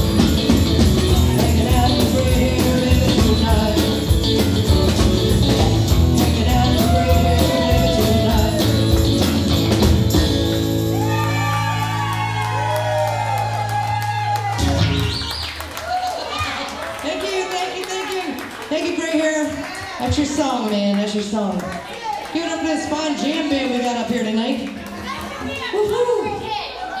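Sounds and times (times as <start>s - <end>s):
electric bass: 0.0s - 15.3s
guitars: 0.0s - 15.4s
live band chords: 0.0s - 15.7s
people talking and calling out: 14.6s - 27.0s.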